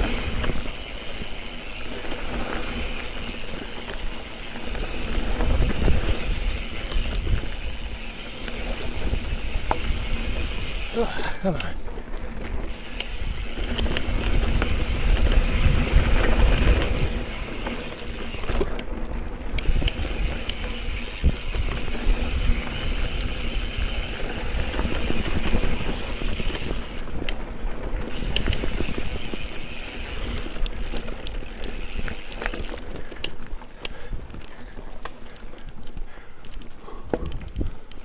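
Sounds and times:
bike rattling over bumps: 0.0s - 38.0s
bike tyres on dirt: 0.0s - 38.0s
wind buffeting microphone: 4.2s - 10.9s, 12.6s - 32.3s.

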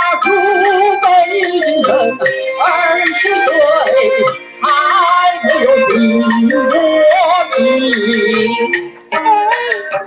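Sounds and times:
musical accompaniment: 0.0s - 10.0s
woman singing opera aria: 0.0s - 10.0s.

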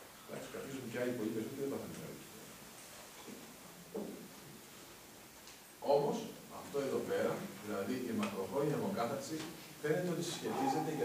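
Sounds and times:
faint room noise: 0.0s - 11.0s
man speaking into a microphone: 5.8s - 11.0s.

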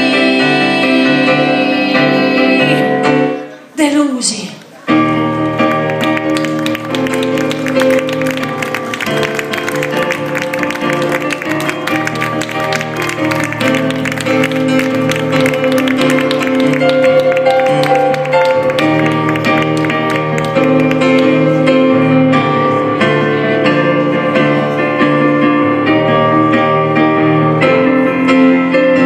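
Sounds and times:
piano playing sustained chords: 0.0s - 3.6s, 4.9s - 29.0s.

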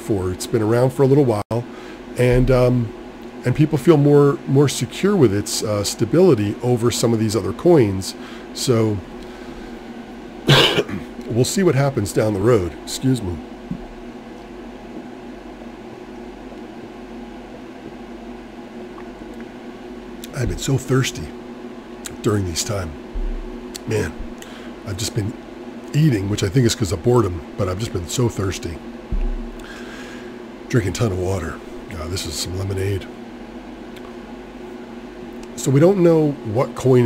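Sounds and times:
fan-like machine hum: 0.0s - 37.0s.

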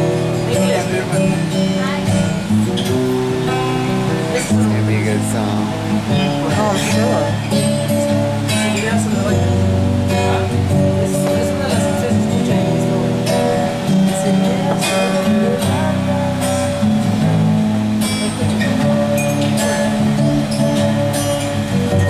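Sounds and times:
acoustic guitar strummed: 0.0s - 22.0s.

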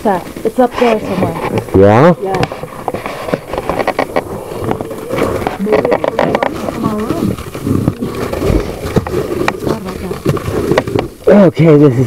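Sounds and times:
footsteps on icy wooden stairs: 0.0s - 11.3s.

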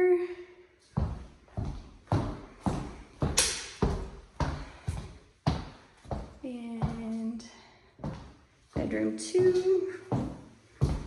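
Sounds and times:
footsteps on hard floor: 0.8s - 11.0s.

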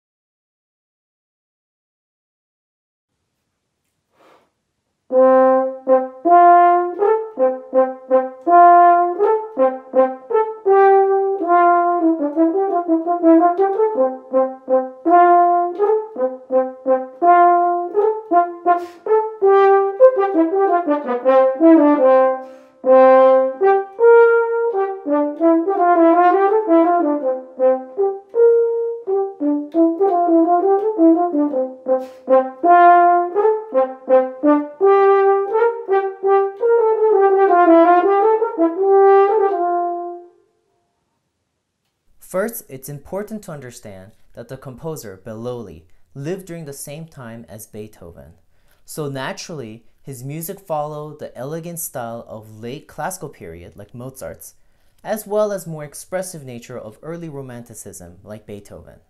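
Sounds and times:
solo french horn: 5.1s - 40.7s.

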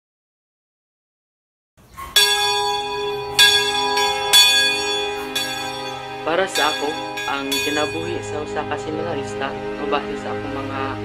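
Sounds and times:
deep bell ringing: 2.0s - 10.1s.

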